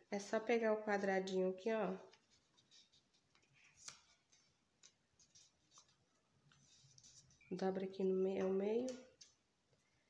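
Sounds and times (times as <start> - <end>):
paper being folded: 2.0 - 7.6.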